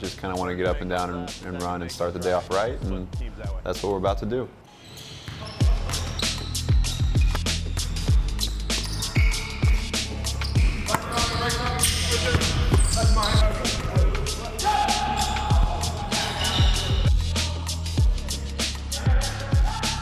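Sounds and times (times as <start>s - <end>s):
background music with bass: 0.0s - 4.5s, 5.6s - 20.0s
basketballs bouncing on gym floor: 10.5s - 14.1s.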